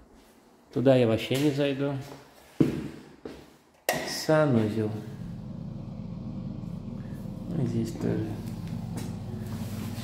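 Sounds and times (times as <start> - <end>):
steady low hum: 5.0 - 10.0.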